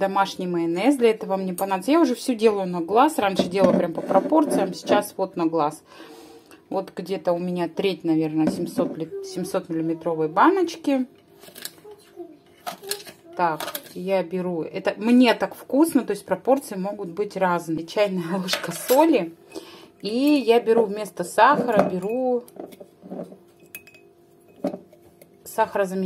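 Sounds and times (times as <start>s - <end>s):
faint steady hum: 0.0s - 26.0s
teaspoon clinking against glass jar: 23.6s - 24.7s.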